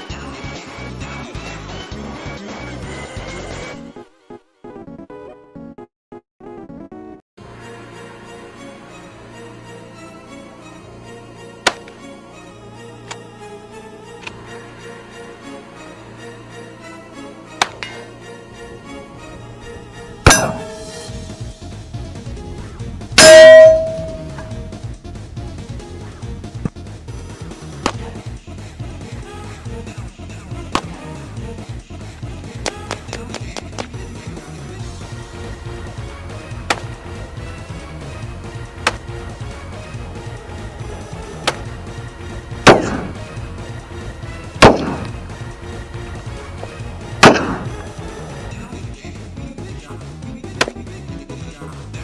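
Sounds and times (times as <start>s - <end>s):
background music: 0.0s - 52.0s
buckshot clanging on steel target: 17.6s - 18.1s, 20.3s - 21.5s, 23.2s - 24.8s, 47.2s - 47.8s
steel plate ringing: 20.2s - 21.6s, 23.2s - 24.8s
gunshots with echo: 20.3s - 21.4s, 42.6s - 43.2s, 44.6s - 45.2s, 47.2s - 47.8s.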